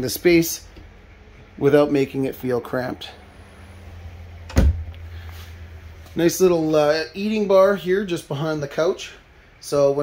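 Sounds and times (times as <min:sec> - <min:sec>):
steady low hum: 0:00.0 - 0:10.0
cabinet door thumping shut: 0:04.5 - 0:04.8.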